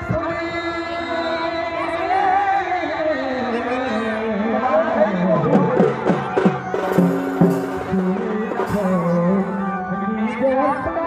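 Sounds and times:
hand drum quick strokes: 6.2s - 9.5s
steady held notes: 6.2s - 10.3s.

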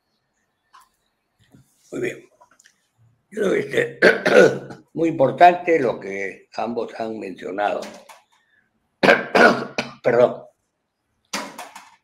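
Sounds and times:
man coughing: 3.8s - 4.8s, 9.0s - 10.0s.

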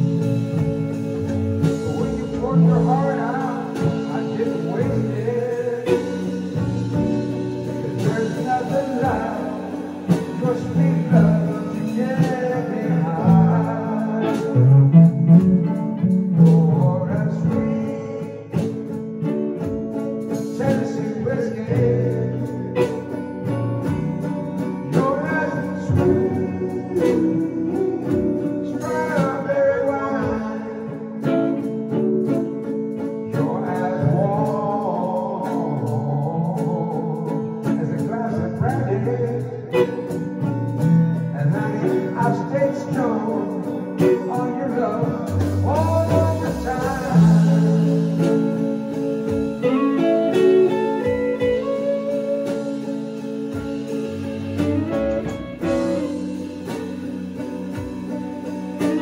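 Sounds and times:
electric guitars playing country blues: 0.0s - 59.0s
man singing: 0.0s - 59.0s.

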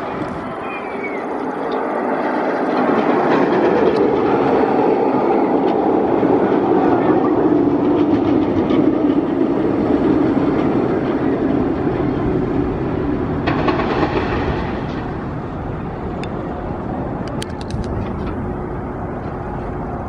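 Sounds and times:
roller coaster train rumbling on track: 0.0s - 20.0s.

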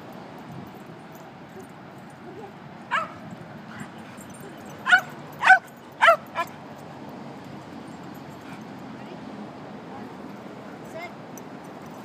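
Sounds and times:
dog barking in high yips: 2.9s - 3.2s, 4.8s - 6.5s.

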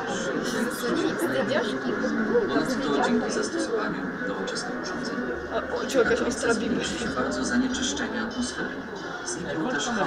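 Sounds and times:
narration over a speaker: 0.0s - 10.0s
people talking: 0.0s - 10.0s.

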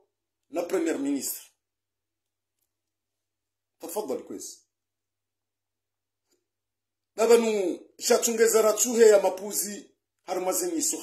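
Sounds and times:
man talking: 0.5s - 1.6s, 3.8s - 4.7s, 7.2s - 11.0s.

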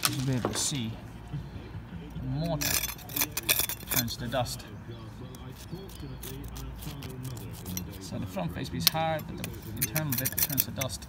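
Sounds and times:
trowel scraping mortar: 2.4s - 4.6s, 5.4s - 11.0s.

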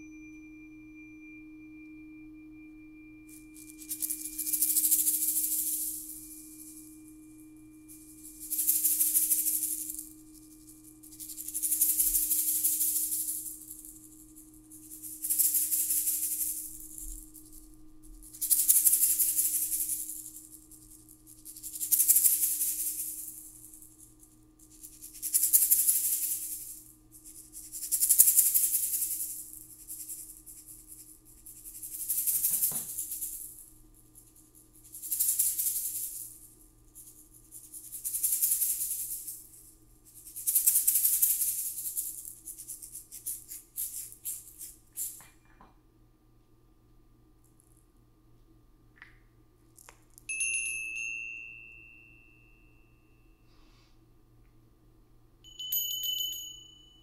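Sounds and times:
hand rattle shaking: 3.3s - 45.5s, 55.5s - 57.0s.

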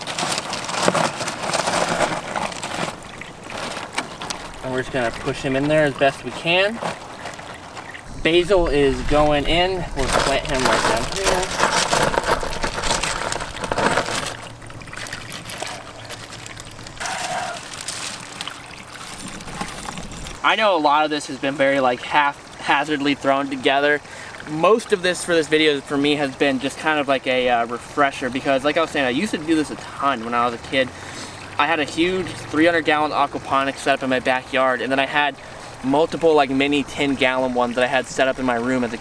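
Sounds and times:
gravel crunching and clattering: 0.0s - 20.5s
water trickling: 0.0s - 39.0s.

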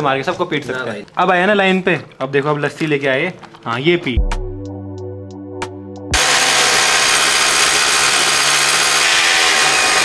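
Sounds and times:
power drill boring into wall: 6.2s - 10.0s.

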